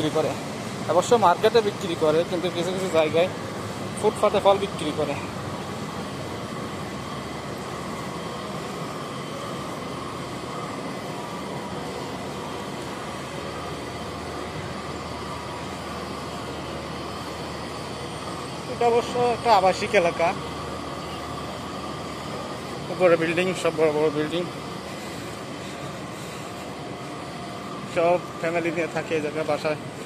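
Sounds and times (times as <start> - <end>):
city street hum: 0.0 - 30.0
faint steady whine: 0.0 - 30.0.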